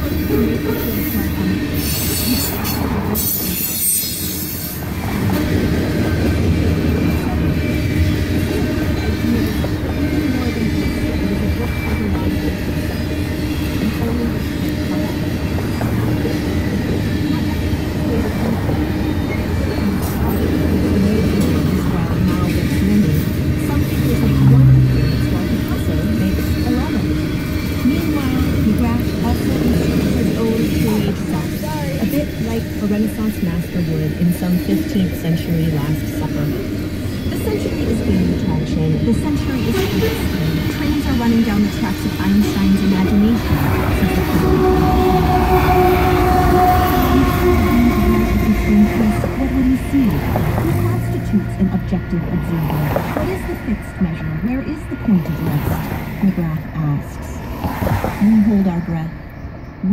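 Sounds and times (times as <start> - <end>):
high wheel squeal: 0.0 - 35.1, 35.7 - 56.3
train wheels rumbling on rails: 0.0 - 59.9.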